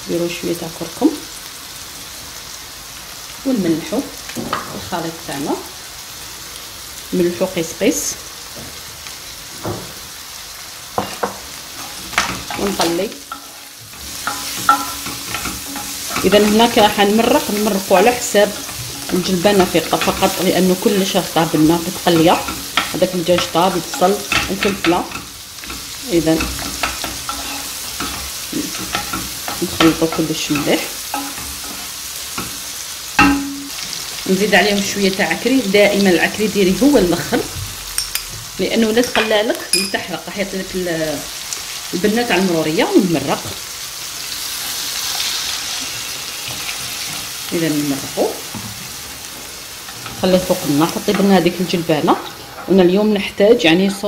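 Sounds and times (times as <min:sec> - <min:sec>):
food sizzling in oil: 0:00.0 - 0:54.0
wooden spoon scraping pan: 0:11.0 - 0:32.6.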